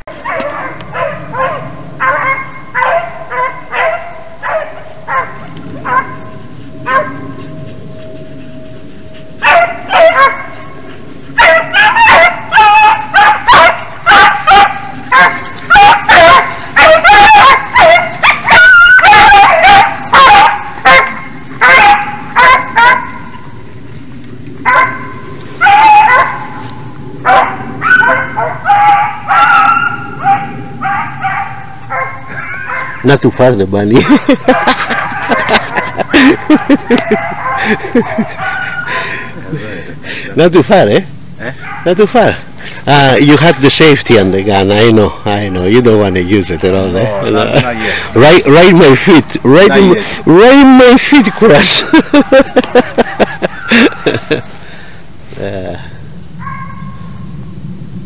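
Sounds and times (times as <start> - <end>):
beagles baying: 0.1 - 23.6, 24.6 - 33.1, 34.0 - 39.3, 45.7 - 54.3, 56.4 - 57.2.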